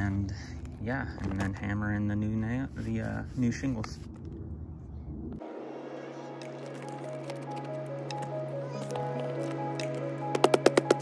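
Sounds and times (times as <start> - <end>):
outdoor background rumble: 0.0 - 11.0
background music: 5.4 - 11.0.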